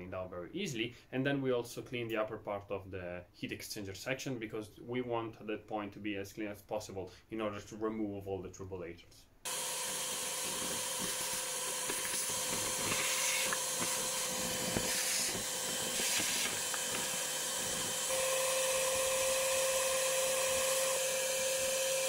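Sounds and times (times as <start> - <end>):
vacuum cleaner hissing and whining: 9.5 - 22.0.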